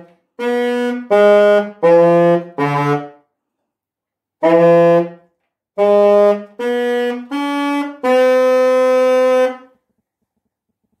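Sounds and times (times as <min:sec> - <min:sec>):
alto saxophone note: 0:00.4 - 0:03.2, 0:04.4 - 0:05.2, 0:05.8 - 0:09.7.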